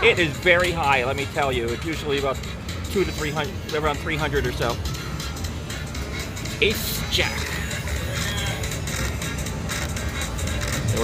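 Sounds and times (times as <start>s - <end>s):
slot machine music: 0.0s - 11.0s.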